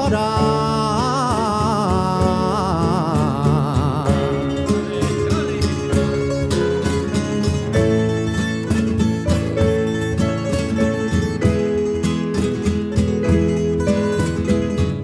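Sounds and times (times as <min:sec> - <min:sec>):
bass: 0:00.0 - 0:15.0
lute: 0:00.0 - 0:15.0
percussion: 0:00.0 - 0:15.0
piano: 0:00.0 - 0:15.0
plucked guitars: 0:00.0 - 0:15.0.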